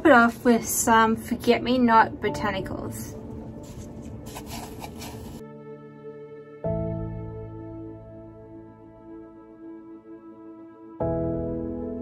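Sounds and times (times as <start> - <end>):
background music with held notes: 0.0 - 12.0
dried petals rustling in paper cup: 3.5 - 5.4.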